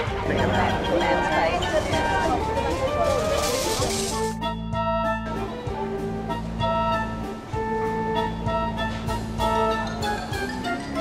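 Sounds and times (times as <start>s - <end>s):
passers-by talking: 0.0s - 4.3s
background music: 0.0s - 11.0s.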